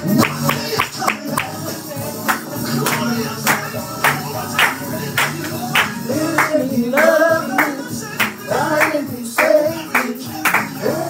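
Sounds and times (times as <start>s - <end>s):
song with singing over a beat: 0.0s - 11.0s
handclaps: 0.2s - 10.8s.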